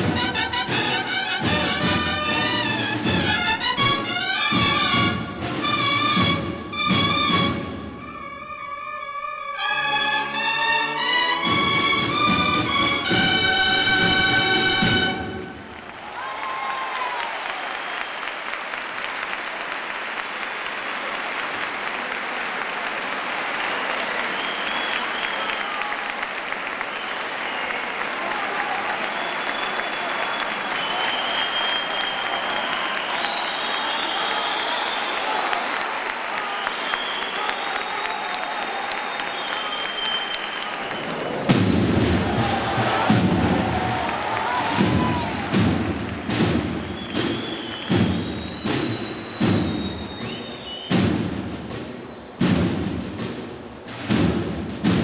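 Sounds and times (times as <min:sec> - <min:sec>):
drum beats: 0:00.0 - 0:07.9, 0:11.4 - 0:15.7, 0:40.5 - 0:55.0
audience applauding: 0:10.6 - 0:51.0
cheers: 0:12.3 - 0:51.0.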